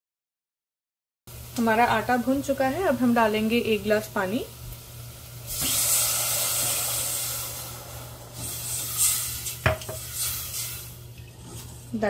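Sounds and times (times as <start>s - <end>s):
water sizzling in hot pan: 1.3s - 12.0s.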